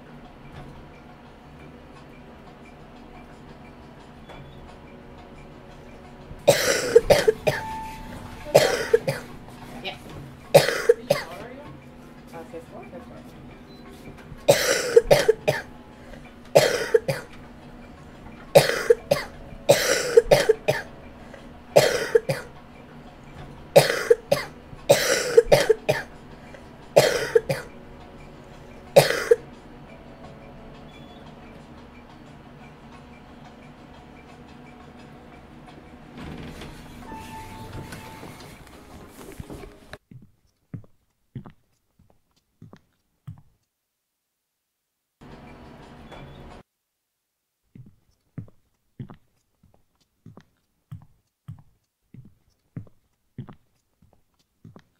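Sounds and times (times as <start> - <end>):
person coughing harshly: 6.5 - 7.7, 8.5 - 9.3, 10.5 - 11.4, 14.5 - 15.7, 16.6 - 17.3, 18.6 - 20.9, 21.8 - 22.5, 23.8 - 26.1, 27.0 - 27.7, 29.0 - 29.4
footsteps on hard floor: 36.3 - 43.5, 47.8 - 54.8.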